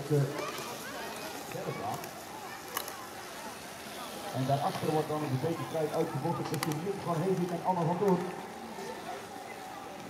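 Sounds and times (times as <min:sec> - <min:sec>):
faint voices: 0:00.0 - 0:10.0
outdoor background noise: 0:00.0 - 0:10.0.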